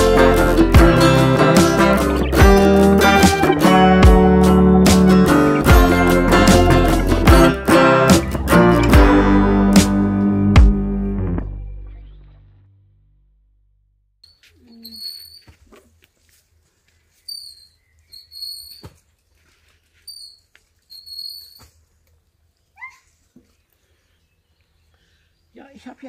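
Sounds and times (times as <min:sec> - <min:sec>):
acoustic guitar music: 0:00.0 - 0:12.7
bird chirping: 0:17.1 - 0:18.9.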